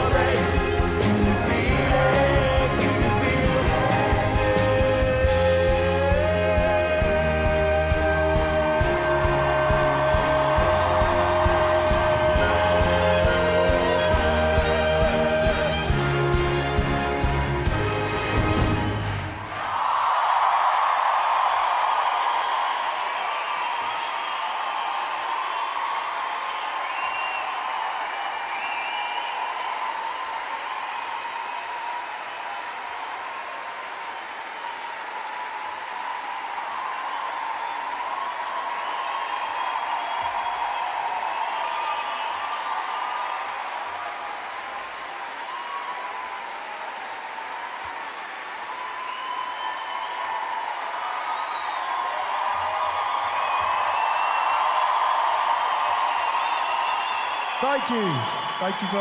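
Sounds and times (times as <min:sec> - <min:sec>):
audience applauding and cheering: 0:00.0 - 0:59.0.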